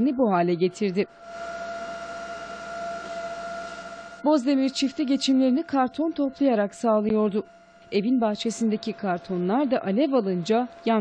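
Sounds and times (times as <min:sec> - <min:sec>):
steady whine: 0:00.0 - 0:11.0.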